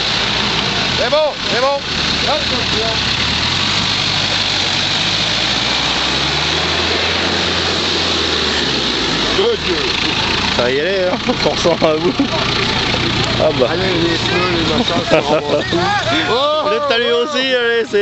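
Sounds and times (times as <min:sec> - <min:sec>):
car engine running under load: 0:00.0 - 0:16.8.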